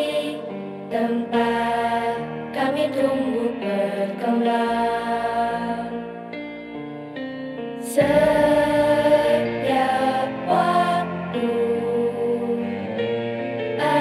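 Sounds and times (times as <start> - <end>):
person singing slow song: 0.0 - 6.5, 7.8 - 13.2
instrumental accompaniment: 0.0 - 14.0.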